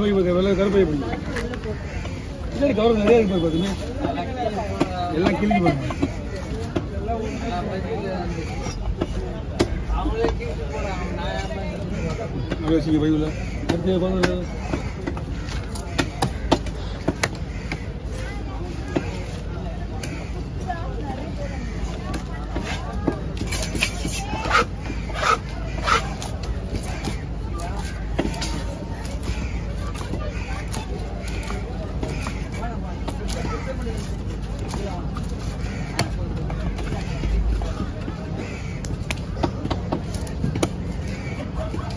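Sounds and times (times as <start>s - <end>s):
market bustle: 0.0s - 41.9s
voices: 0.0s - 41.9s.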